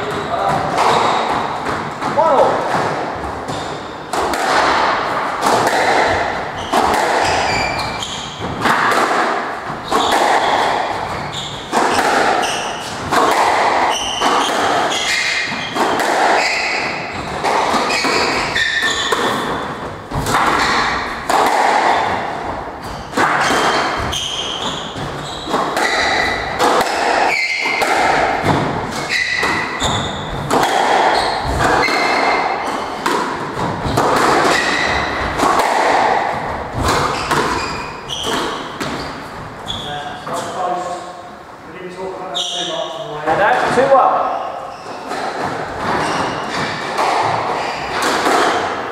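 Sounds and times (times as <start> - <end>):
shoes squeaking on wooden floor: 0.0 - 40.8, 42.3 - 48.6
squash ball hitting racquets and walls: 0.0 - 41.4, 42.2 - 48.9.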